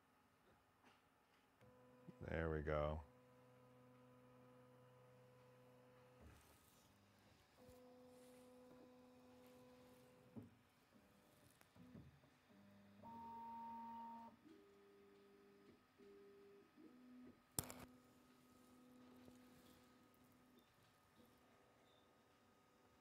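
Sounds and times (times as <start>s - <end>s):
sharp click: 17.6s - 17.9s.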